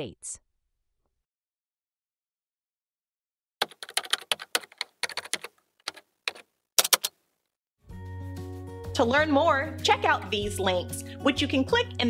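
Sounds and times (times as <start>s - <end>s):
computer keyboard typing: 3.6s - 7.2s.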